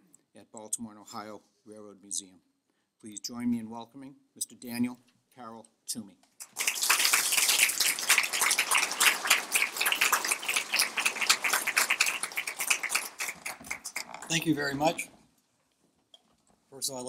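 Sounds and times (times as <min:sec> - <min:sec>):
audience applauding: 0:06.4 - 0:14.8.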